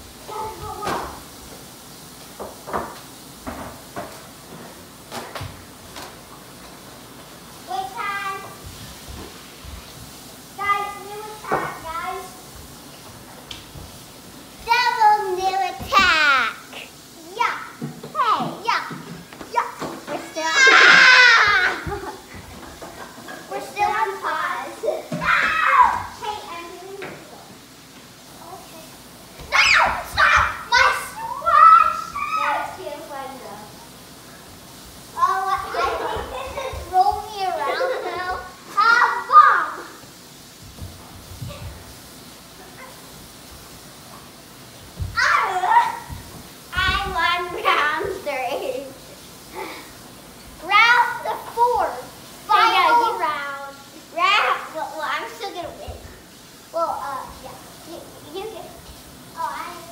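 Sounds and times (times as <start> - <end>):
children shouting and squealing: 20.3 - 22.2, 25.0 - 26.5, 29.4 - 32.8, 35.2 - 40.0, 45.2 - 46.2
child crying: 20.5 - 21.9.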